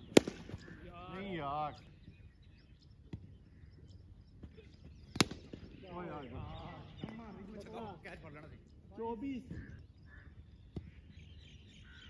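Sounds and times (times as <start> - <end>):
cricket bat hitting ball: 0.0 - 0.6, 5.1 - 5.7.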